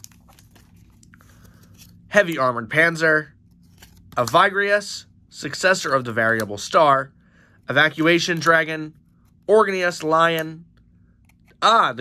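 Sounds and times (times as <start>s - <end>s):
cards rustling in hands: 0.0s - 4.8s, 7.5s - 12.0s.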